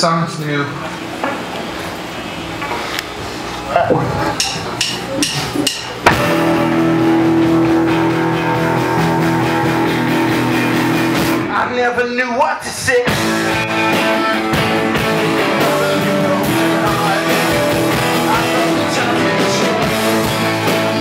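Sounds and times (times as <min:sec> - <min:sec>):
drums: 0:00.0 - 0:21.0
electric guitars: 0:06.0 - 0:21.0
keyboard: 0:06.0 - 0:21.0.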